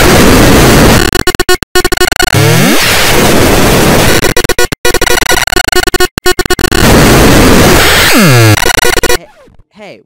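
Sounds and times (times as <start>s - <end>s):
harsh distorted noise: 0.0s - 9.6s.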